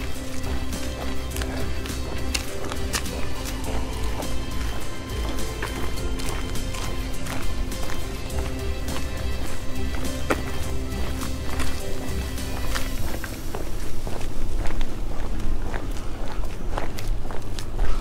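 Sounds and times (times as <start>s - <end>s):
background music with low bass: 0.0s - 18.0s.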